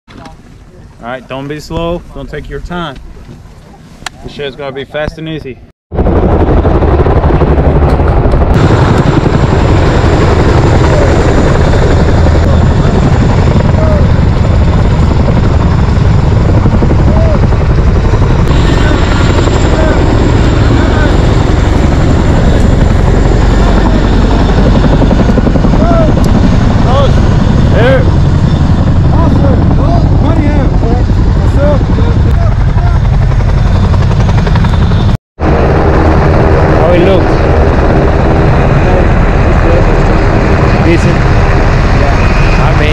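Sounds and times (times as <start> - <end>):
helicopter rotors and engines: 0.1 - 42.9.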